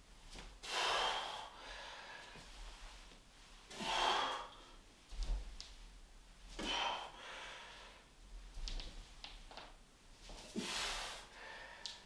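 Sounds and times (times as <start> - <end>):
man exhaling forcefully: 0.6 - 2.2, 3.7 - 4.6, 6.6 - 7.8, 10.5 - 11.8.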